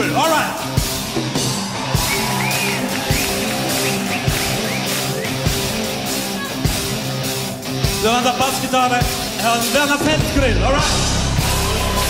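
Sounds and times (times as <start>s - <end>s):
bass and held chords: 0.0s - 12.0s
drum kit beat: 0.0s - 12.0s.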